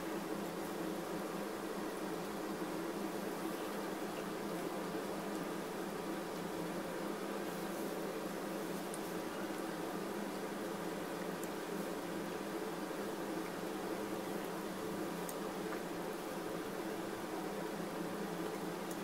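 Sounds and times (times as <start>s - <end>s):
room tone hum with hiss: 0.0s - 19.0s.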